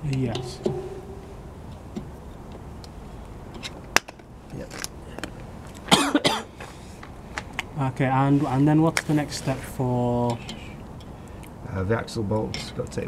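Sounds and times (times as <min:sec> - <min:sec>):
person coughing: 0:05.9 - 0:06.5.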